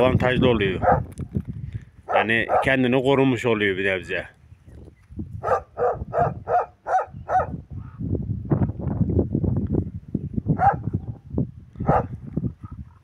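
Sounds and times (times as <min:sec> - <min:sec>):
dog barking: 0:00.8 - 0:01.1, 0:02.1 - 0:02.8, 0:05.4 - 0:07.6, 0:10.6 - 0:11.0, 0:11.8 - 0:12.2.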